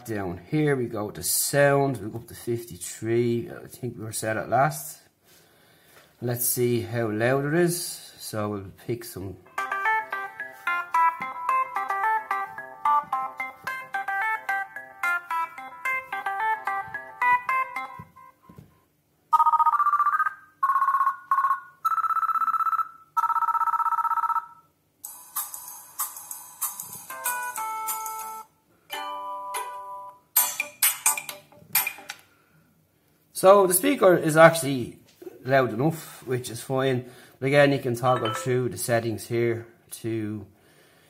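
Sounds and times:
plucked ringtone melody: 9.5 - 18.4, 38.1 - 38.8
two-tone electronic telephone ring: 19.3 - 24.7
short ringtone tunes: 38.1 - 38.8.

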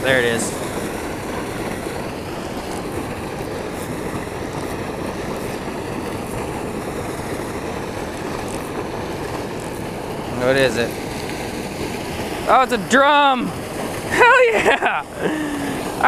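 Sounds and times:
water rushing from spillway: 0.0 - 16.0.

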